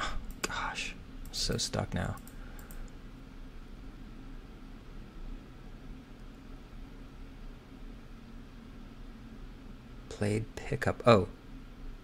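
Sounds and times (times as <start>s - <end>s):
low room hum: 0.0s - 12.0s
computer mouse clicks: 2.0s - 3.0s.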